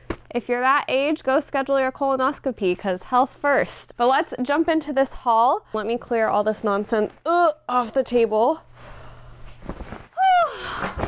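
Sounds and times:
woman groaning with effort: 0:10.2 - 0:11.0.

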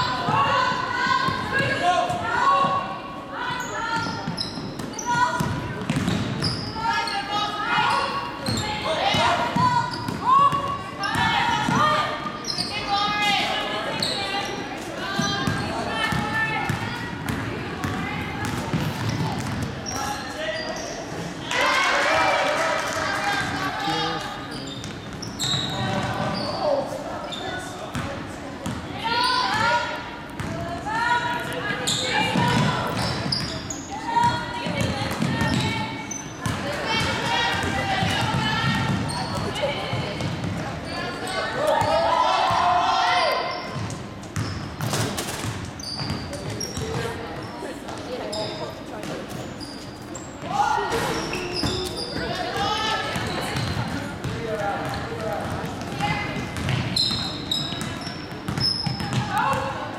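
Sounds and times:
players and spectators chattering: 0:00.0 - 0:59.9
basketball bouncing on hardwood: 0:53.2 - 0:56.8.

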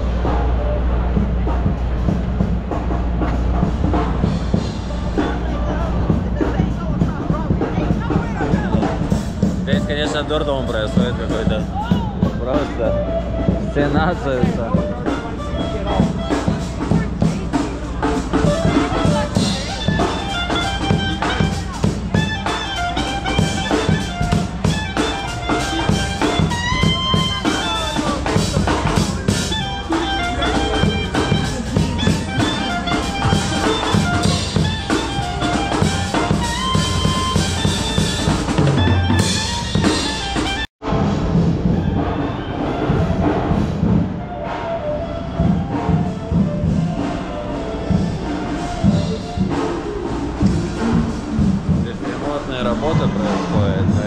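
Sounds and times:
crowd chatter: 0:00.0 - 0:54.0
drum kit beat: 0:00.0 - 0:54.0
horn melody: 0:00.0 - 0:54.0
street band music: 0:00.0 - 0:54.0.

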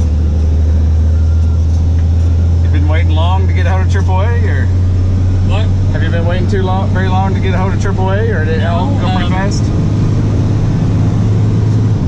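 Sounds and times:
truck engine and road drone: 0:00.0 - 0:12.0.

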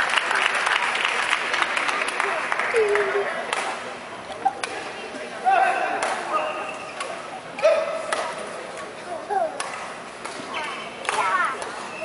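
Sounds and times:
rackets striking shuttlecock: 0:04.5 - 0:04.9, 0:07.0 - 0:08.9, 0:09.5 - 0:11.9
shoes squeaking: 0:09.8 - 0:11.0, 0:11.7 - 0:12.0.

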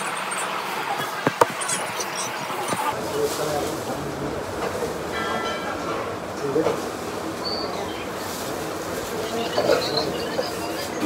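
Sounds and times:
indistinct cafe voices: 0:00.0 - 0:11.0.

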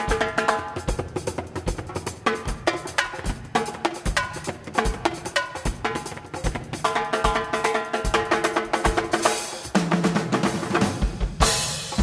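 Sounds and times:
samba drum groove: 0:00.0 - 0:12.0.

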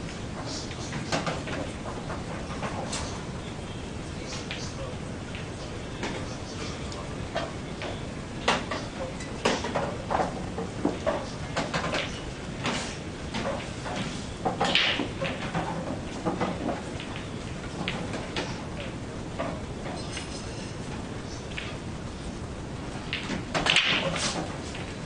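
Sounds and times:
room noise: 0:00.0 - 0:25.0.

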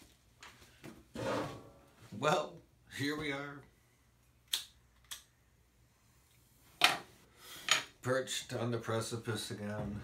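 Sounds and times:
metal chair scraping: 0:01.1 - 0:01.9.

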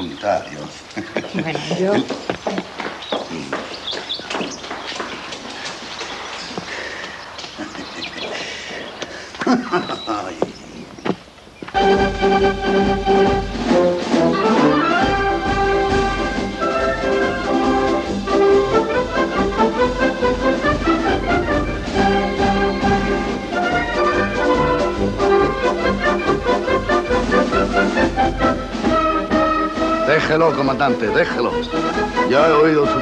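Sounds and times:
military brass band playing: 0:11.7 - 0:33.0
tuba bass: 0:11.8 - 0:33.0.

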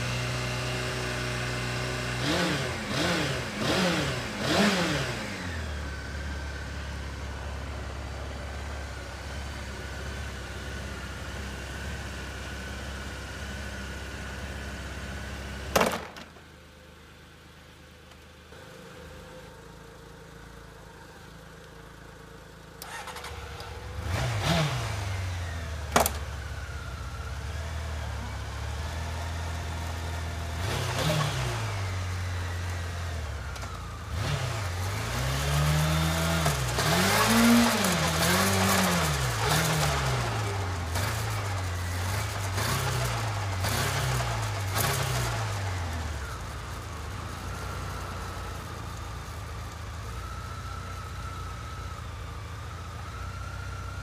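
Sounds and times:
motorcycle engine revving: 0:00.0 - 0:16.2, 0:22.7 - 0:54.0.

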